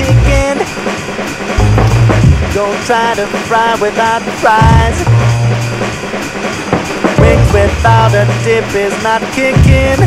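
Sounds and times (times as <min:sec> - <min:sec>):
hip-hop drum beat: 0:00.0 - 0:10.0
deep bass note: 0:01.6 - 0:02.6, 0:07.2 - 0:08.3.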